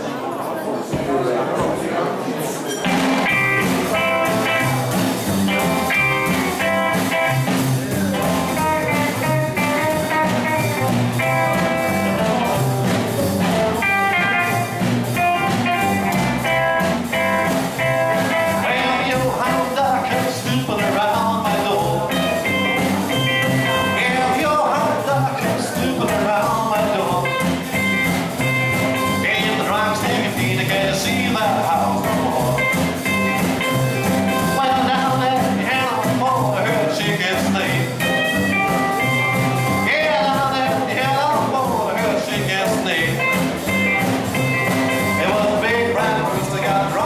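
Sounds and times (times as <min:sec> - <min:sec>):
rockabilly band playing: 0:02.6 - 0:47.0
electric guitar leading: 0:02.9 - 0:47.0.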